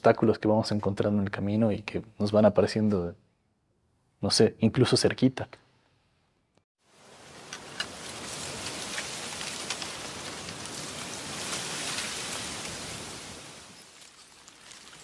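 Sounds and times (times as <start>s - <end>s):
rushing hiss: 6.9s - 14.1s.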